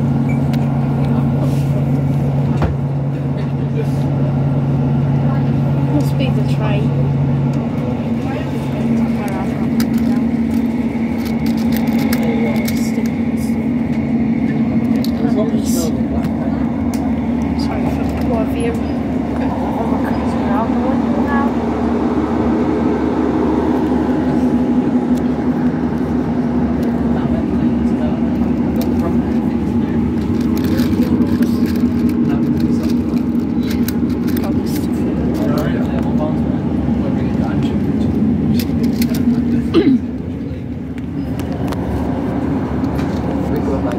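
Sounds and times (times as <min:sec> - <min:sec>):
diesel engine drone: 0:00.0 - 0:43.9
wheels rumbling on rail: 0:00.0 - 0:43.9.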